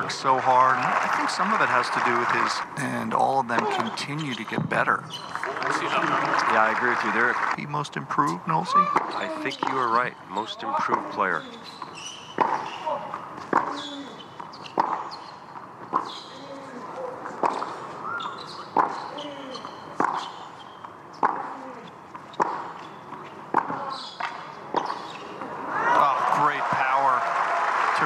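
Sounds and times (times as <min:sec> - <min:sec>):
shoe squeaks: 0:08.8 - 0:09.7, 0:11.3 - 0:13.0, 0:13.6 - 0:16.8, 0:17.5 - 0:25.4.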